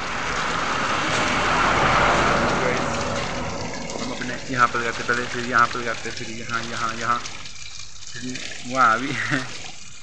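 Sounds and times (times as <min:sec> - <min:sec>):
vehicle driving past: 0:00.0 - 0:06.2.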